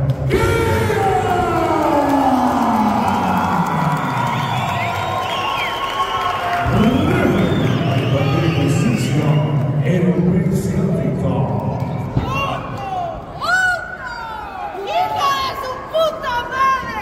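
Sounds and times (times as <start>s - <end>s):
crowd cheering and whistling: 0.3s - 10.0s.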